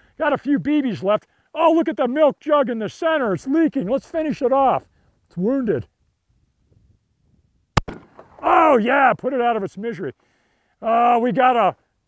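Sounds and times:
pistol shot: 7.8 - 8.4.

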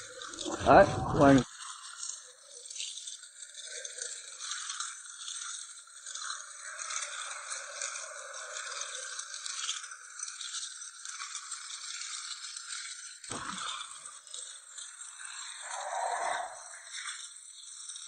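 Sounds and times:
walking frame scraping on concrete: 10.5 - 18.0.

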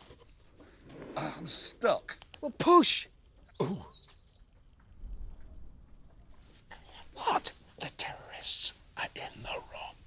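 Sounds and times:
man whispering: 6.7 - 10.0.

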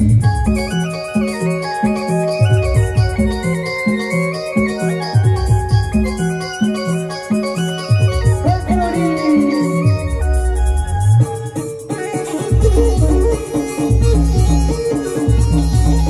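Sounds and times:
keyboard dance music: 0.0 - 16.0.

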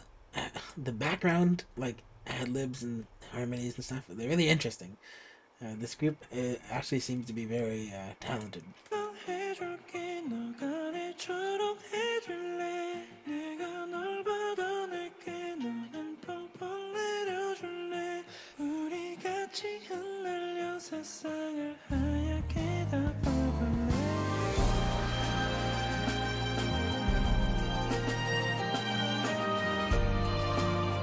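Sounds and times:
man singing: 8.4 - 27.1
band with bass and drums: 23.2 - 31.0.

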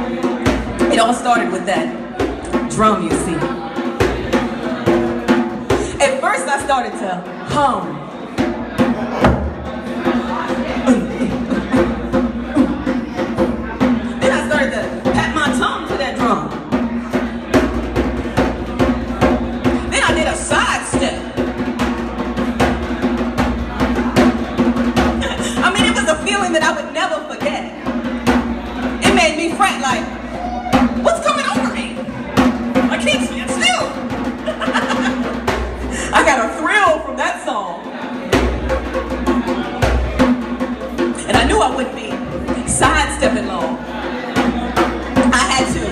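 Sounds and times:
hand drum playing: 0.0 - 45.9.

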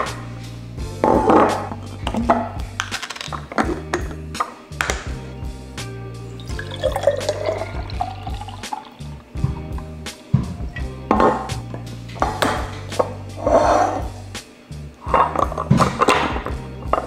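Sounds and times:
background music: 0.0 - 17.0
milk pouring into bottle: 6.4 - 9.0.

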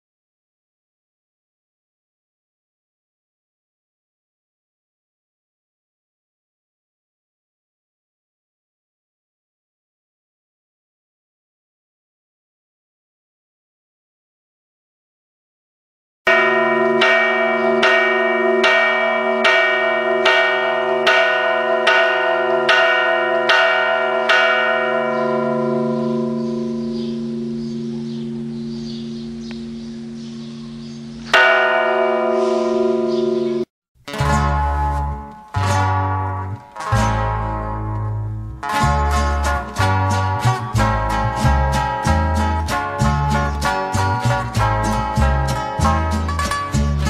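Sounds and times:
church bell tolling: 16.3 - 47.0
music with plucked strings: 34.1 - 47.0.

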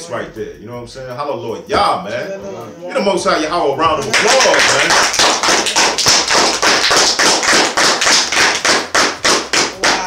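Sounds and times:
people clapping hands: 4.0 - 10.0.

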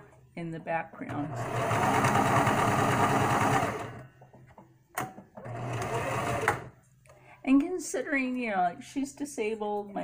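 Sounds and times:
sewing machine stitching: 1.3 - 4.0, 5.4 - 6.7.

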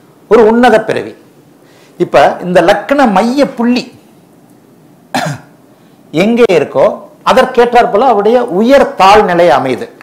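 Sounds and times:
man coughing: 5.1 - 5.5.

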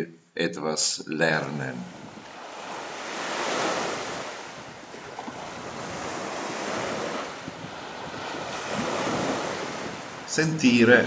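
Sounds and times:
sea waves washing onto shore: 1.5 - 11.0.

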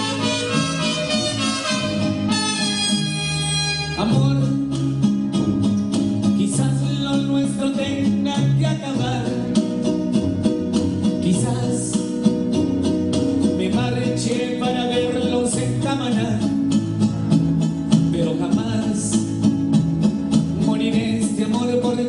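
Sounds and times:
amplified music with steady beat: 0.0 - 22.0
man singing into a microphone: 3.7 - 5.0, 6.4 - 10.0, 11.0 - 12.5, 13.4 - 16.6, 18.0 - 19.5, 20.5 - 22.0.

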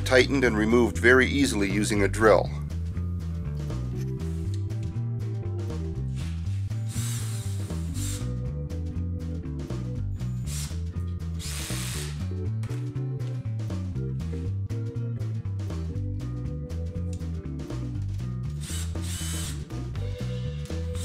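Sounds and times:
background music with bass line: 0.0 - 21.0
cordless drill running: 6.9 - 8.3, 10.5 - 10.8, 11.4 - 12.2, 18.6 - 19.7.

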